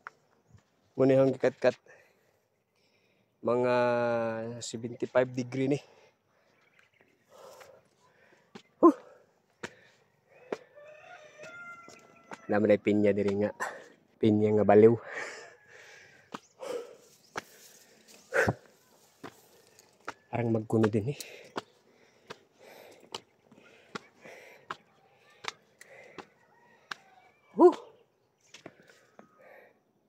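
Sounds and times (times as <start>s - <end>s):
person huffing: 8.8s - 9.8s, 15.0s - 17.1s, 18.0s - 18.9s.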